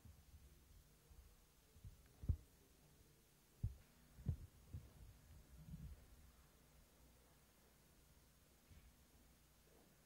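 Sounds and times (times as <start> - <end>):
faint deep thumps: 3.6 - 6.0.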